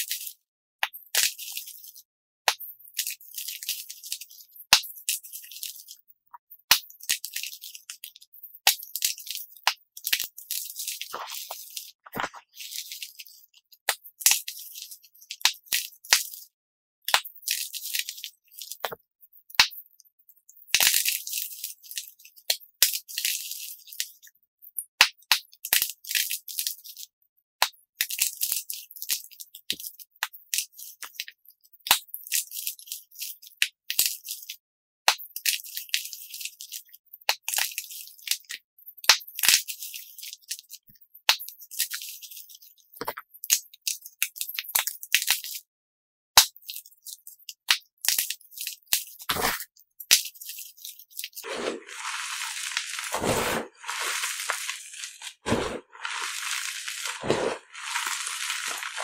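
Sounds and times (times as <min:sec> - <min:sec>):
chalk crunching and crumbling: 0:07.0 - 0:13.7, 0:48.1 - 0:59.0.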